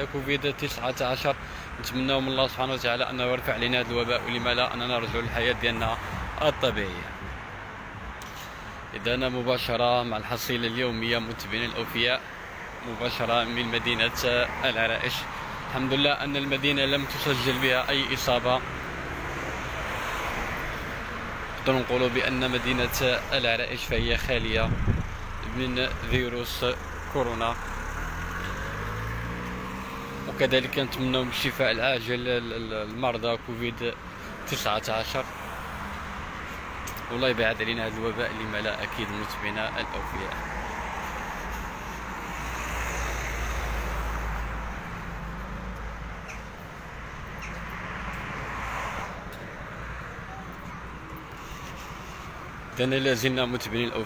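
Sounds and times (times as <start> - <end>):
low traffic rumble: 0.0 - 54.0
passing vehicle engine and tyres: 0.0 - 54.0
van driving past: 24.4 - 31.3.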